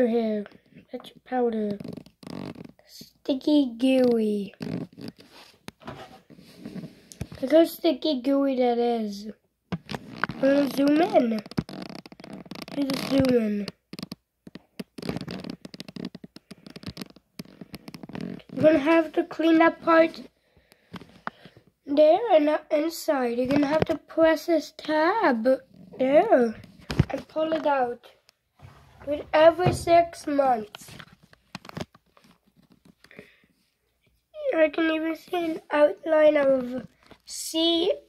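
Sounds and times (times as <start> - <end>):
fingers handling clicks and rustles: 0.4 - 7.6, 9.7 - 21.8, 23.4 - 33.4, 35.2 - 37.3.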